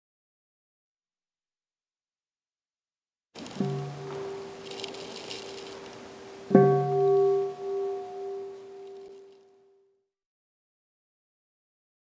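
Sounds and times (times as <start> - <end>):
bowl bell ringing: 6.5 - 9.3.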